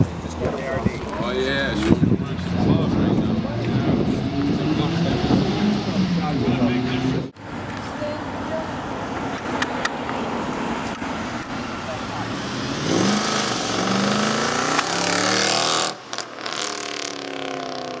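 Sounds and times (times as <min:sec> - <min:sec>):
car engine accelerating hard: 0:02.3 - 0:07.3, 0:12.3 - 0:18.0.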